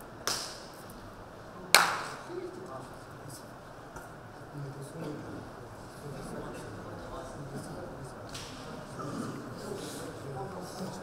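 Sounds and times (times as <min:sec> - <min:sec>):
sharp hand claps: 0:00.2 - 0:00.8, 0:01.7 - 0:02.2.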